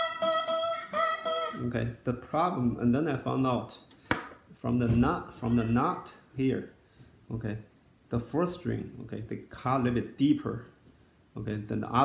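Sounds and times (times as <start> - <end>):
string buzz: 0.0 - 1.7
slide guitar high note: 0.0 - 1.8.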